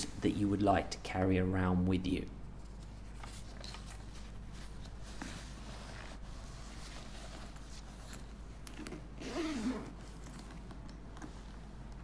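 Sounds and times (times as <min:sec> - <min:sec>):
metal zip rasp: 0:09.2 - 0:10.0.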